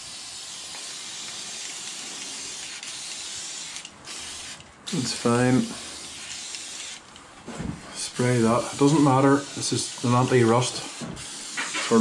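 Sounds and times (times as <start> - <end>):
aerosol spray hissing: 0.0 - 7.0, 8.0 - 12.0.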